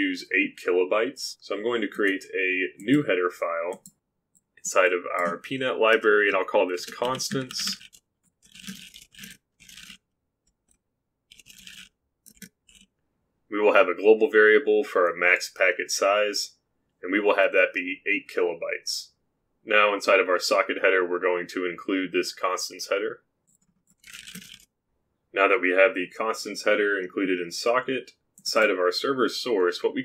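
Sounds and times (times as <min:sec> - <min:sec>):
faint keyboard typing: 0:03.6 - 0:05.6, 0:06.6 - 0:12.9, 0:23.4 - 0:24.7.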